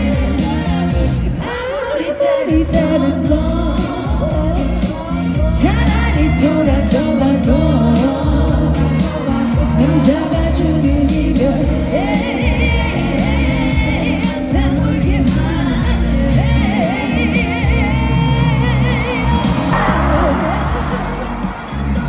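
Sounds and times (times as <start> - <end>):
live band accompaniment: 0.0 - 22.0
woman singing pop ballad: 0.0 - 22.0.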